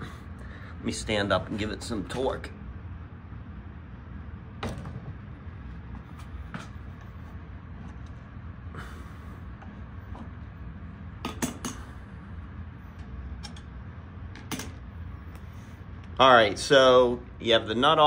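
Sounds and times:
air handler humming: 0:00.0 - 0:18.0.

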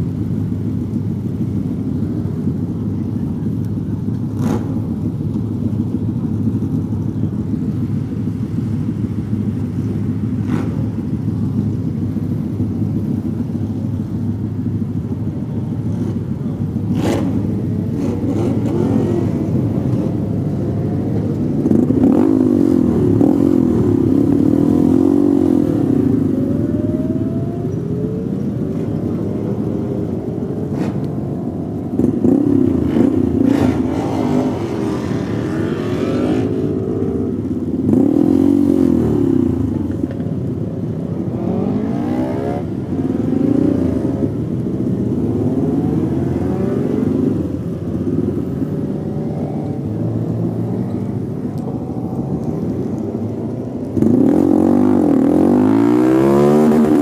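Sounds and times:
motorcycle engines idling: 0:00.0 - 0:55.8.

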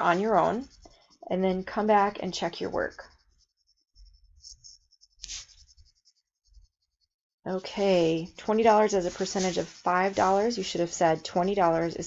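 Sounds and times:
scratchy rustle: 0:00.0 - 0:07.0, 0:07.6 - 0:12.0.

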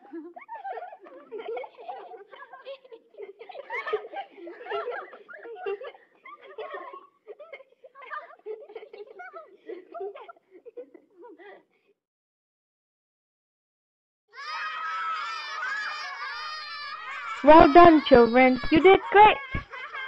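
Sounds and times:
children giggling and chattering: 0:00.0 - 0:12.0, 0:15.3 - 0:20.0.

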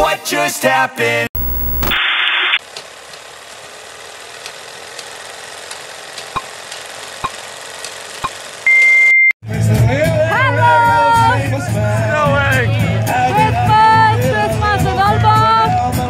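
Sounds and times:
loud high beep: 0:01.4 - 0:02.0, 0:08.7 - 0:09.3
burst of static: 0:01.4 - 0:02.6.

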